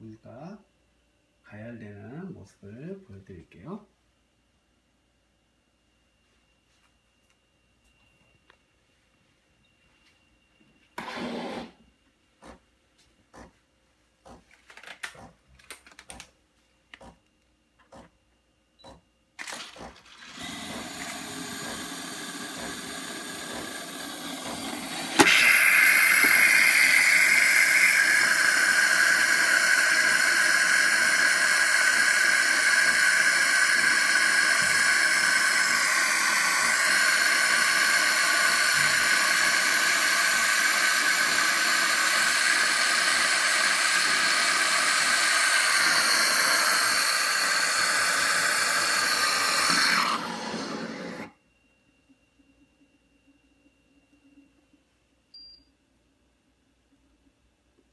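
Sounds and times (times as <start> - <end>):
espresso machine frothing milk: 11.0 - 11.8, 19.4 - 51.4.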